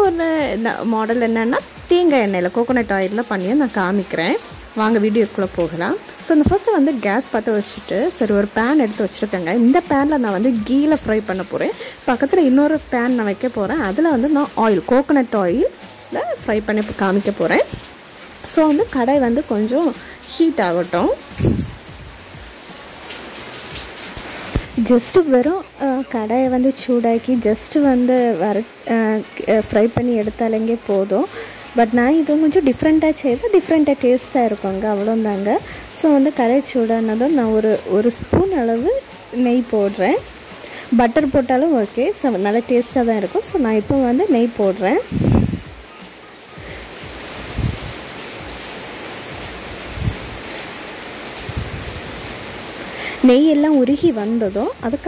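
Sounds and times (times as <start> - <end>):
woman speaking: 0.0 - 17.8, 18.5 - 21.4, 24.6 - 40.2, 40.9 - 45.2, 53.1 - 55.0
ghee sizzling: 0.0 - 55.0
soft low thumps: 21.3 - 22.6, 45.1 - 45.8, 47.1 - 48.0.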